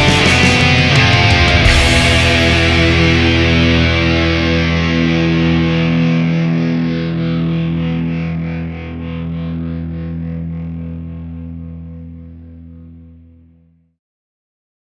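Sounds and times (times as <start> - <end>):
distorted rock chord ringing: 0.0 - 13.6.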